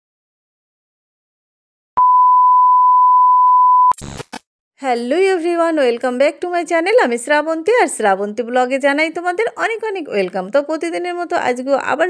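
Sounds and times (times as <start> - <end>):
steady electronic beep: 2.0 - 4.2
crackling noise: 3.9 - 4.4.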